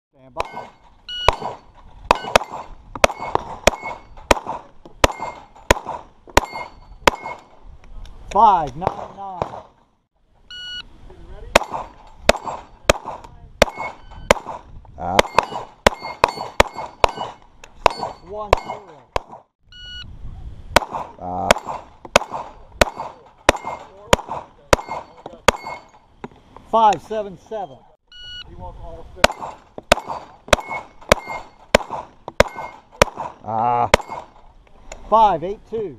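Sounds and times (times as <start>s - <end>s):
shot timer beep: 0.4s - 1.6s, 10.5s - 10.9s, 13.7s - 14.4s, 19.7s - 20.1s, 24.8s - 26.0s, 27.6s - 28.5s
pistol shots: 0.4s - 7.5s, 8.8s - 9.8s, 11.5s - 19.5s, 20.8s - 25.9s, 29.2s - 34.4s
steel plates ringing: 6.4s - 7.5s, 15.2s - 19.0s, 22.8s - 24.0s, 24.8s - 26.1s, 29.3s - 31.7s, 32.4s - 32.9s, 33.9s - 34.4s.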